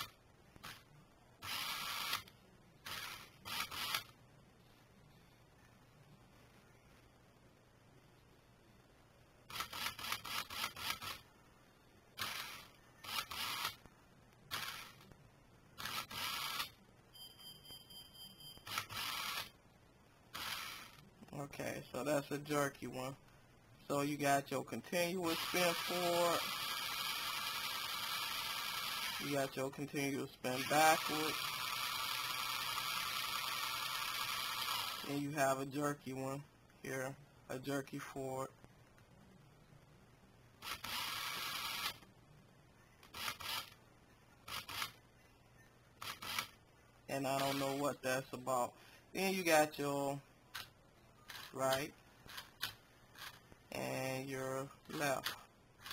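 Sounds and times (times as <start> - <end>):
toy car motor spinning wheels: 1.4 - 4.1, 9.5 - 11.2, 12.2 - 13.9, 14.5 - 15.0, 15.8 - 16.8, 18.7 - 19.6, 20.3 - 21.0, 25.2 - 29.6, 30.5 - 35.2, 40.6 - 42.0, 43.0 - 43.8, 44.5 - 45.0, 46.0 - 46.6, 47.3 - 47.9, 55.2 - 55.9.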